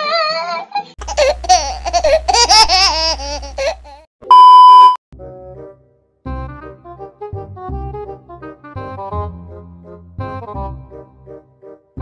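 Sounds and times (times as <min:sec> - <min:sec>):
high-pitched laughing voice: 0:00.0 - 0:04.0
loud steady beep: 0:04.3 - 0:05.0.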